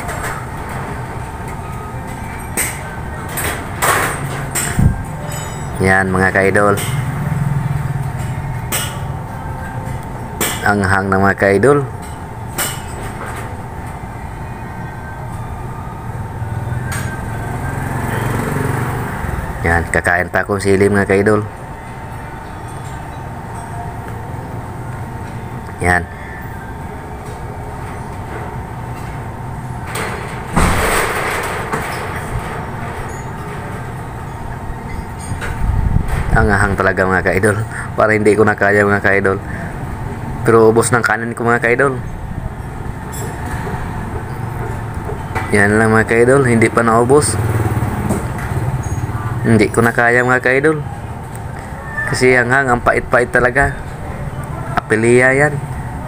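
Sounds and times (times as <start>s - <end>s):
steady low hum: 0.0s - 56.0s.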